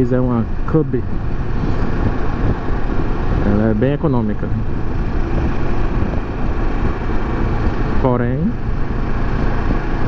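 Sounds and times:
motorcycle engine and road noise: 0.0s - 10.0s
wind on microphone: 0.0s - 10.0s.

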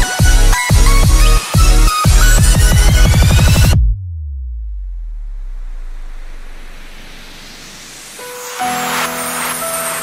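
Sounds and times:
deep bass note sliding down: 3.0s - 8.2s.

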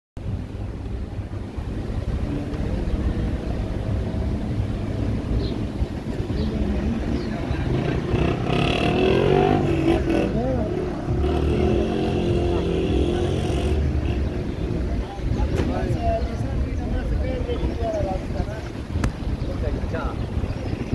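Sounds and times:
car engine and road noise: 0.2s - 20.9s
voices of people at roadside: 0.2s - 20.9s.

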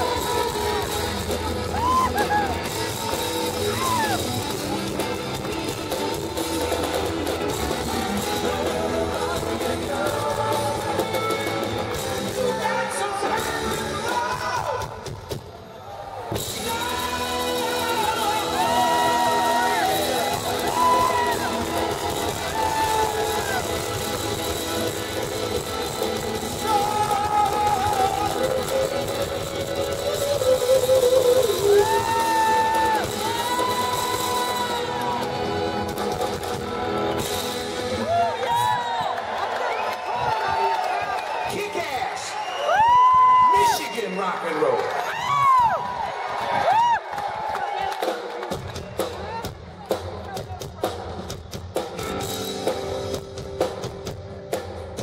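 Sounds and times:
live rock band playing: 0.0s - 15.4s, 16.3s - 39.5s, 48.0s - 55.0s.

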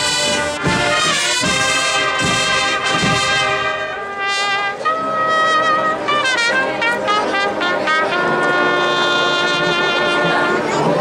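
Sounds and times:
brass band playing a march: 0.0s - 11.0s.

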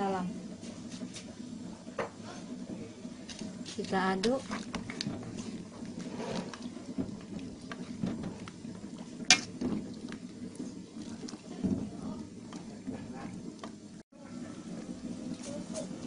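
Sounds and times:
spoon stirring in a metal pot: 3.2s - 11.6s
spoon scraping pot: 3.8s - 8.5s.

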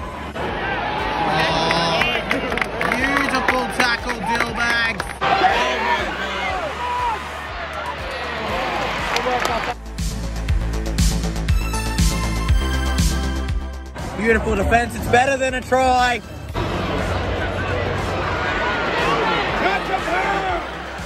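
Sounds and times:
stadium crowd cheering and shouting: 0.0s - 9.8s, 13.9s - 21.0s
music playing: 0.0s - 21.0s.

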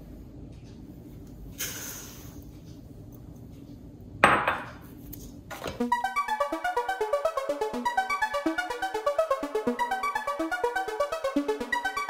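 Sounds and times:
keyboard music: 5.8s - 12.0s.

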